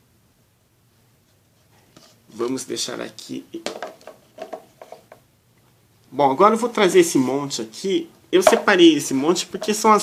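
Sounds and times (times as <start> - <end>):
plastic cups knocking on table: 3.6 - 5.2, 8.4 - 8.8.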